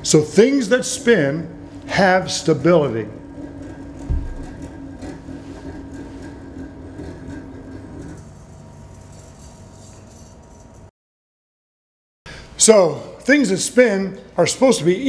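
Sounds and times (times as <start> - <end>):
low thump: 4.0 - 4.7.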